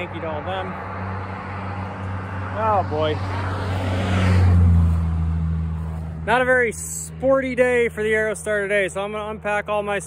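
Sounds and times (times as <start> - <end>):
vehicle engine drone: 0.0 - 10.0.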